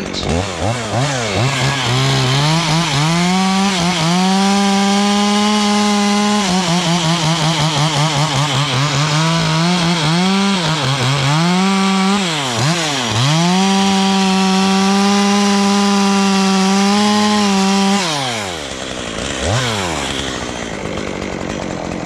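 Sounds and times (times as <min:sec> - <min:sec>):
chainsaw cutting wood: 0:00.0 - 0:22.0.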